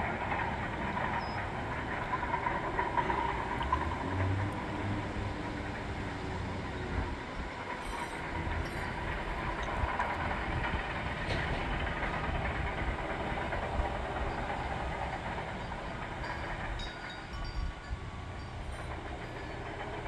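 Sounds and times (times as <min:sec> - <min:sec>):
bulldozer engine rumble: 0:00.0 - 0:20.0
metallic clatter: 0:07.6 - 0:20.0.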